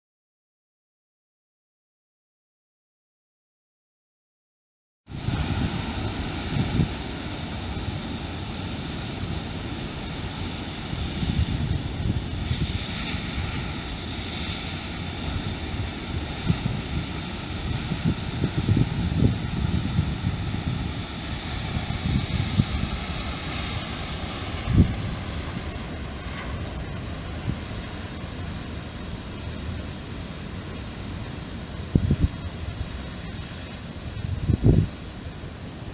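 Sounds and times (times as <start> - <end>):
surf breaking on rocks: 5.1 - 35.9
wind buffeting microphone: 5.1 - 35.9.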